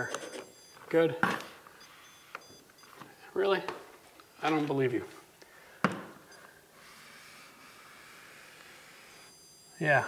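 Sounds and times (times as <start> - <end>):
stud finder beeps: 0.0 - 5.0, 5.9 - 10.0.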